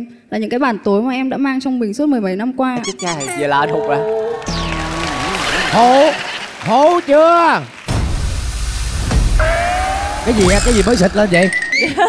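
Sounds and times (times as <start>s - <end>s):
steady rising whistle-like tone: 9.4s - 11.9s.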